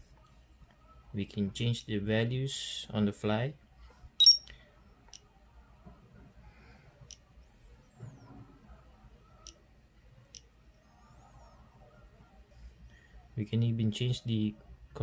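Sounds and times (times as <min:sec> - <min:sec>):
short high beep: 0:04.2 - 0:04.5.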